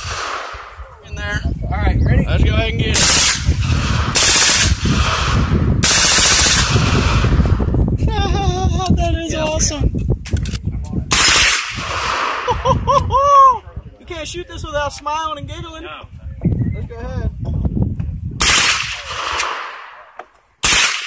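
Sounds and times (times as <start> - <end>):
automatic gunfire bursts: 4.1 - 4.8, 5.8 - 6.7, 20.6 - 21.0
voices: 12.4 - 17.8.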